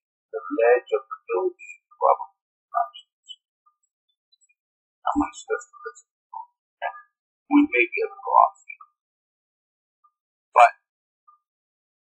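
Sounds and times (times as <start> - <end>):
person speaking: 0.4 - 3.2, 5.1 - 6.0, 7.5 - 8.8.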